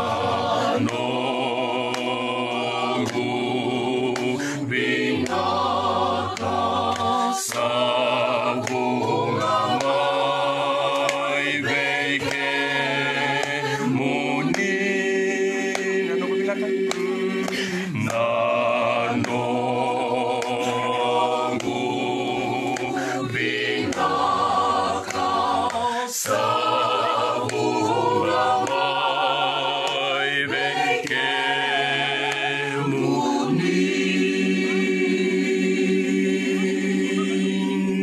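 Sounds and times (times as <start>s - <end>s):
group singing hymn unaccompanied: 0.0s - 38.0s.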